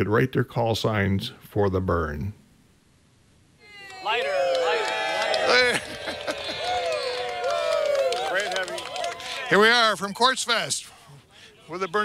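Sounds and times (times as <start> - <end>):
crowd noise: 3.6 - 12.0.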